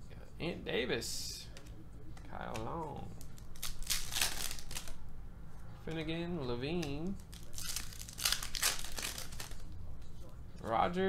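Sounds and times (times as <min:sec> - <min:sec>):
cards being handled: 0:01.5 - 0:05.0, 0:05.6 - 0:10.3
foil wrappers crinkling and tearing: 0:03.2 - 0:05.0, 0:07.0 - 0:09.8.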